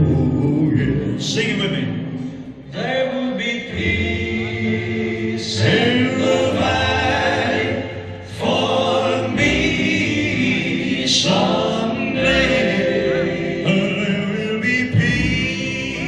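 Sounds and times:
choir voices: 0:00.0 - 0:16.0
gospel accompaniment: 0:00.0 - 0:16.0.

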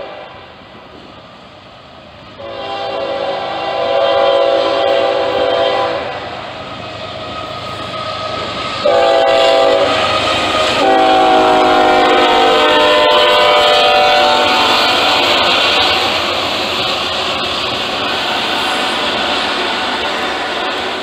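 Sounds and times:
locomotive air horn blasts: 0:00.0 - 0:00.5, 0:02.4 - 0:06.3, 0:08.8 - 0:16.2
locomotive engines rumbling: 0:00.0 - 0:21.0
rail cars clattering over track: 0:00.0 - 0:21.0.

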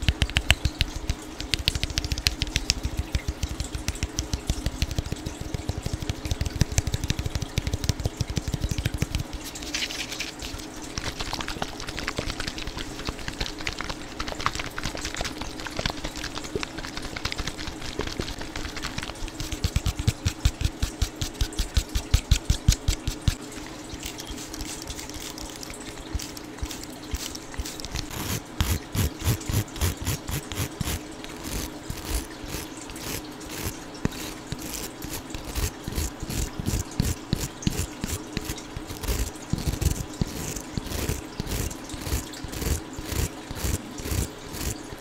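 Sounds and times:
fingers tapping on plastic bottle: 0:00.0 - 0:09.4.

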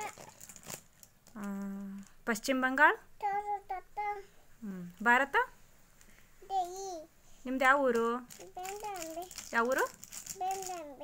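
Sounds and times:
toddler speaking: 0:00.0 - 0:00.4, 0:03.2 - 0:04.4, 0:06.4 - 0:07.1, 0:08.4 - 0:09.5, 0:10.3 - 0:11.0.

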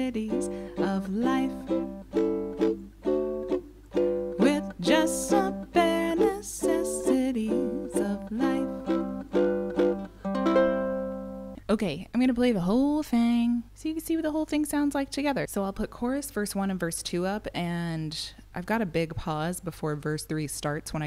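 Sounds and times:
ukulele strumming: 0:00.0 - 0:11.6.

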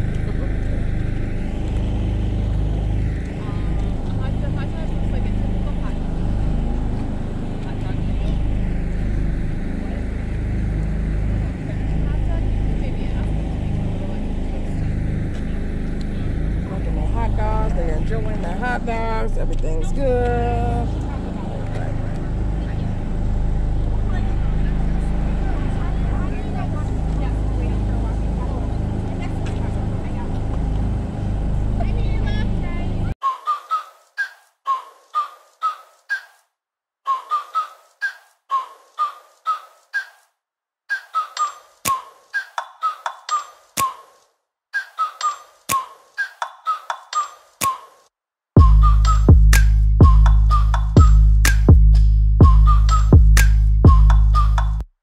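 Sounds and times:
road and engine rumble in car: 0:00.0 - 0:33.2, 0:48.6 - 0:54.8
sharp ticks: 0:49.0 - 0:52.1.

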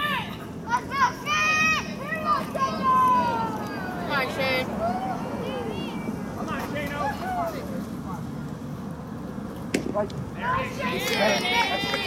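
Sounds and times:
faint spectators' voices: 0:00.0 - 0:12.0
baseball bat crack: 0:09.7 - 0:10.2.

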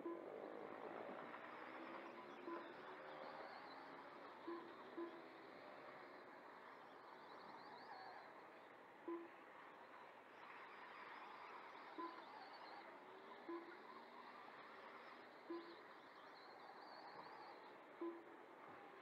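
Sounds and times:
whine of electric motorcycles: 0:00.0 - 0:19.0.

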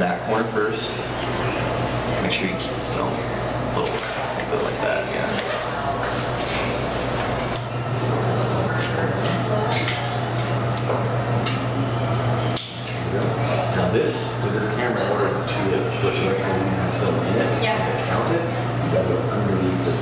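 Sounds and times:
low talk: 0:00.0 - 0:20.0
steady hum: 0:00.0 - 0:20.0.

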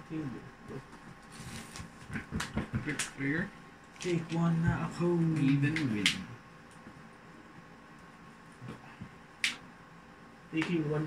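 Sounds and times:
playing cards being handled: 0:00.9 - 0:03.2
sharp snap: 0:09.4 - 0:09.6.

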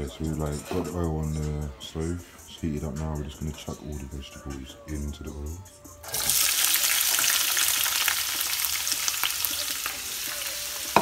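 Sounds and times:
vegetables sizzling in hot oil: 0:06.1 - 0:11.0.

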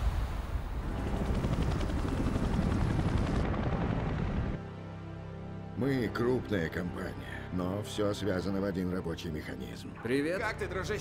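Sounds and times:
helicopter rotor beating: 0:00.8 - 0:04.6.

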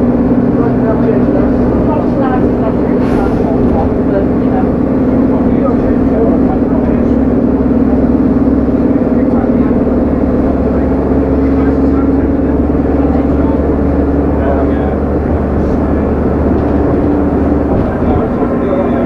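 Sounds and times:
bus diesel engine drone: 0:00.0 - 0:19.0
road noise: 0:00.0 - 0:19.0.

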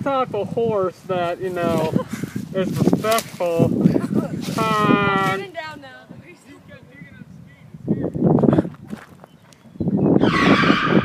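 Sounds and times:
loud shrill screech: 0:10.2 - 0:11.0.

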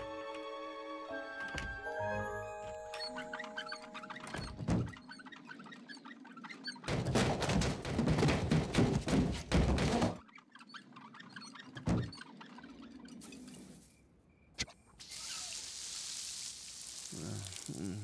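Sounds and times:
thumping and scraping: 0:04.3 - 0:05.2, 0:06.8 - 0:10.2, 0:11.8 - 0:12.3
lawn sprinklers hissing: 0:15.0 - 0:18.0.

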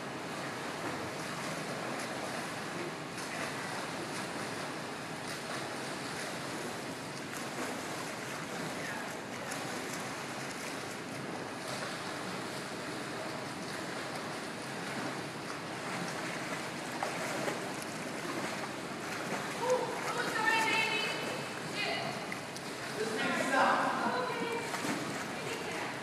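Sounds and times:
swimmers splashing water: 0:00.0 - 0:26.0.

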